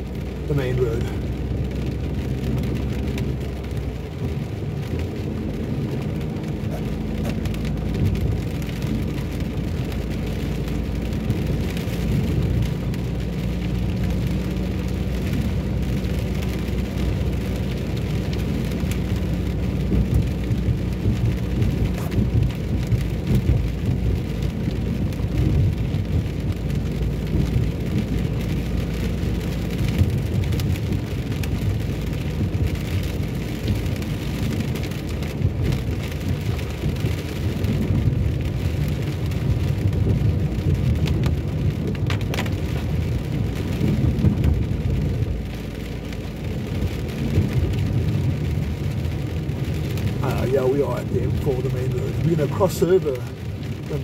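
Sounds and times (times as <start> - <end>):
engine and road rumble: 0.0 - 54.0
rain on a car: 0.0 - 54.0
tyres on a wet road: 0.0 - 54.0.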